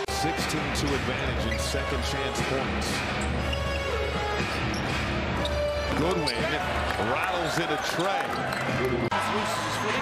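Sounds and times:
music playing: 0.0s - 10.0s
ball and court sounds: 4.4s - 9.2s
arena crowd noise: 5.9s - 10.0s.

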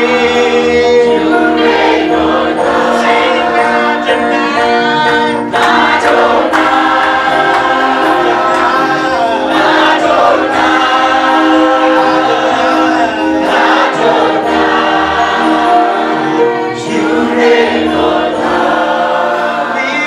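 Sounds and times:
choir singing gospel: 0.0s - 20.0s.

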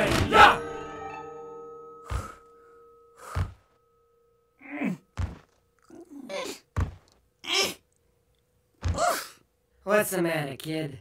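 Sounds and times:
dull thuds: 5.1s - 5.6s, 6.7s - 7.1s.

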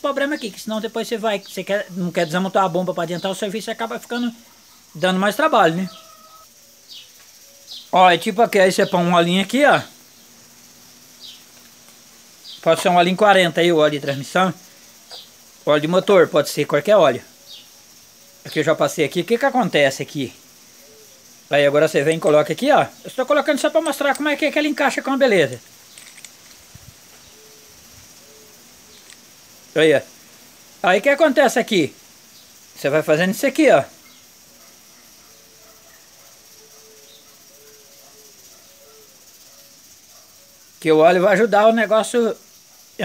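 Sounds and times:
background hiss: 0.0s - 43.0s
faint bird chirps: 4.1s - 8.1s, 17.0s - 18.6s, 20.6s - 21.4s, 27.2s - 29.1s, 34.0s - 40.8s.

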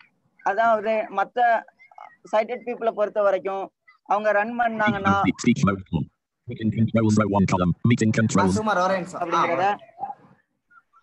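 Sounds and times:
synthesized voice reading: 4.7s - 8.7s.

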